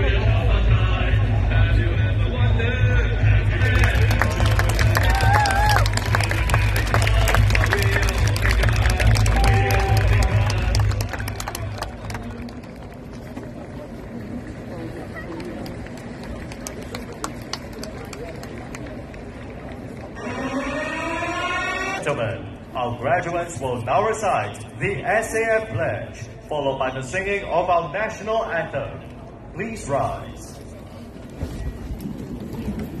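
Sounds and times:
murmur of crowd: 0.0 - 33.0.

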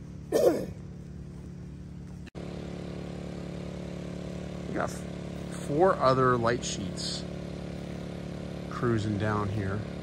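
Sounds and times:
portable generator running: 0.0 - 10.0.

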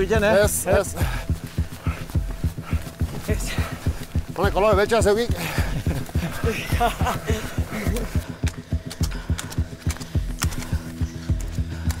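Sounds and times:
running footfalls on dirt: 0.0 - 12.0.

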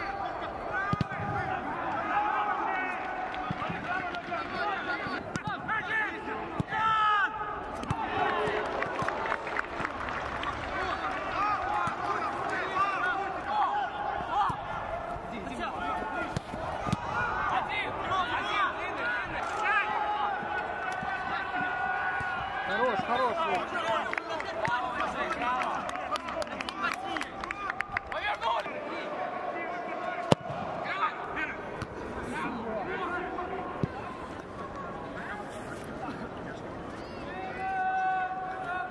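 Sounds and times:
players calling and shouting: 0.0 - 38.9.

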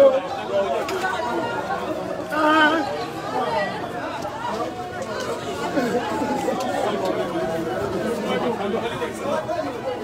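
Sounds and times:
murmur of chatter: 0.0 - 10.0.

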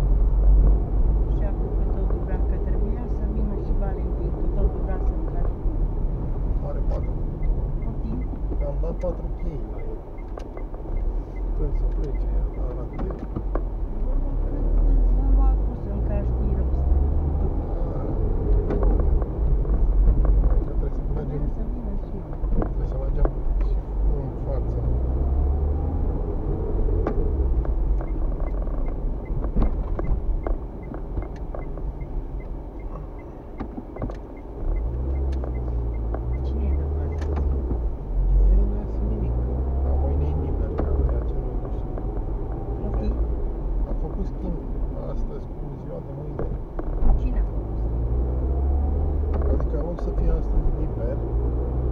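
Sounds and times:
turn signal ticking: 0.0 - 24.4, 25.4 - 44.9
car engine and road rumble: 0.0 - 51.9.

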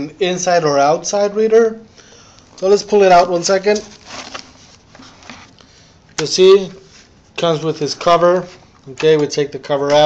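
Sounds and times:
cardboard box rustling and scraping: 2.8 - 5.6.

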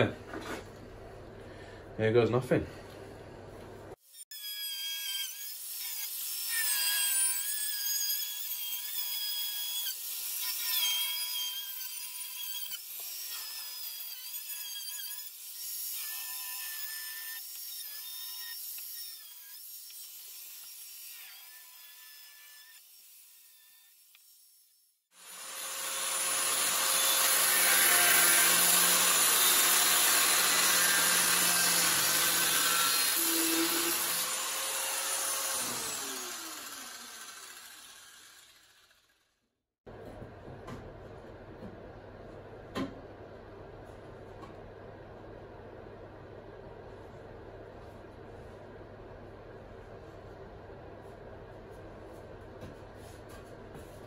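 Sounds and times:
angle grinder cutting steel: 4.2 - 39.2.

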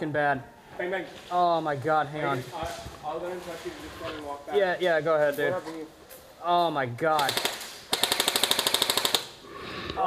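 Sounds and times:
airsoft gun full-auto burst: 7.2 - 9.4.

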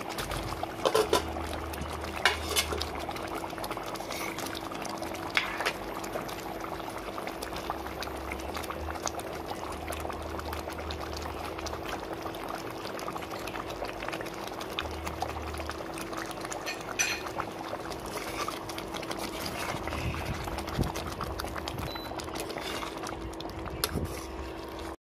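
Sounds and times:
curry bubbling in a pan: 0.0 - 25.0.

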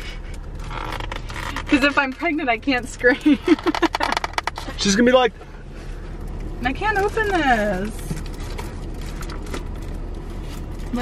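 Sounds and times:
car interior engine and road rumble: 0.0 - 11.0.

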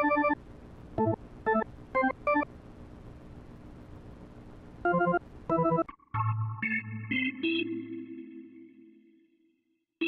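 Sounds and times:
low hum and hiss: 0.0 - 9.9
organ chord: 4.9 - 9.2.

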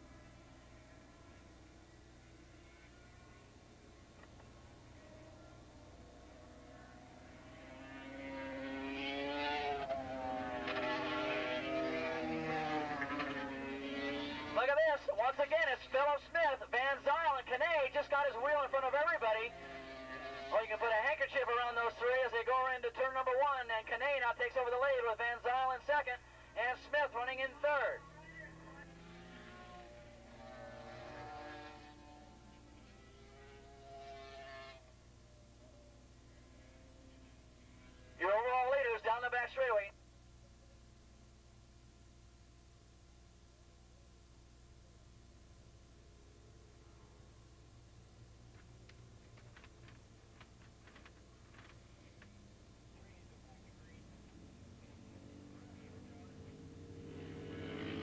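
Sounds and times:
distant racing motorcycle engines: 0.0 - 41.4, 45.2 - 58.0.

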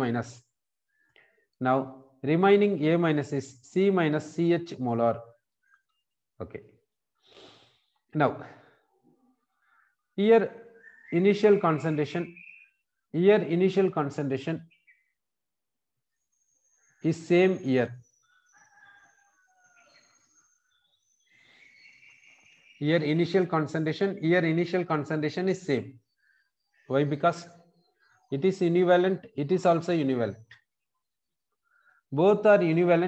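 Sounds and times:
man speaking: 0.0 - 0.4, 1.6 - 5.2, 6.4 - 6.7, 8.2 - 8.6, 10.2 - 12.3, 13.2 - 14.6, 17.1 - 18.0, 22.8 - 25.9, 26.9 - 27.6, 28.3 - 30.4, 32.1 - 33.0
breath through the nose: 7.2 - 8.0
thin high bird calls: 10.8 - 12.8
faint rooster crowing: 18.2 - 20.6.

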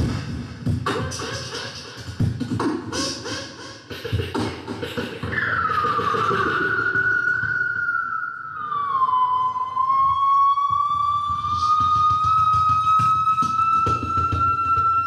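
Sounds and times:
beatboxed bass pulses: 0.0 - 7.7, 10.1 - 15.0.

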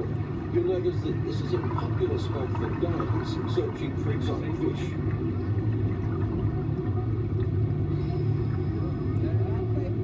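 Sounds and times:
low rumble and hum in cabin: 0.0 - 10.0
faint voices: 6.4 - 10.0.

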